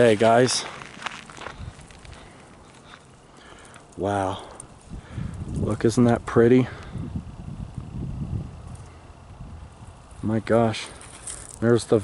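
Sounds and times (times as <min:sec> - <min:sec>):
footsteps on dirt road: 0:00.0 - 0:05.9, 0:07.6 - 0:12.0
outdoor background noise: 0:00.0 - 0:12.0.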